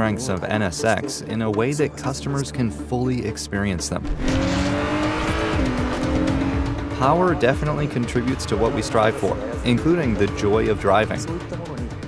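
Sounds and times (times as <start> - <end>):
car engine at speed: 4.0 - 11.5.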